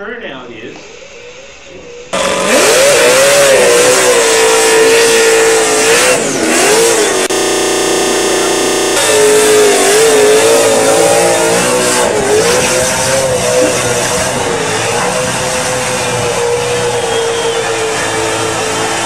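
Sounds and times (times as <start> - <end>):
car engine revving high: 2.1 - 19.0.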